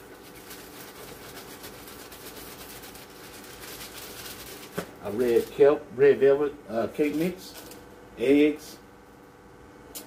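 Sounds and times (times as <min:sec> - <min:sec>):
hands rustling at plastic bowl: 0:00.0 - 0:05.6
faint steady hum: 0:00.0 - 0:10.0.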